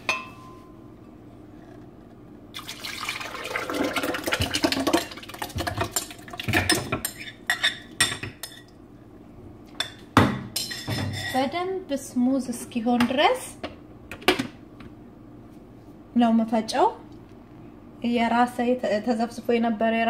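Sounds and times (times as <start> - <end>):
oats and water pouring: 2.6 - 6.4.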